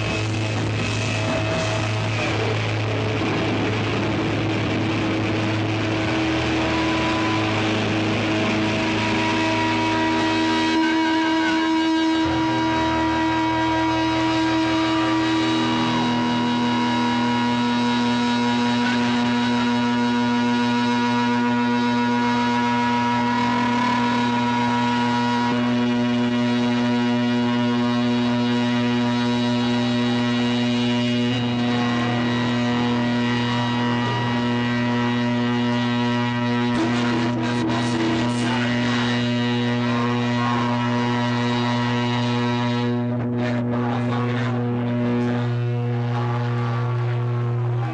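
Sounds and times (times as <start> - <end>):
distorted electric guitar chord: 0.0 - 47.9.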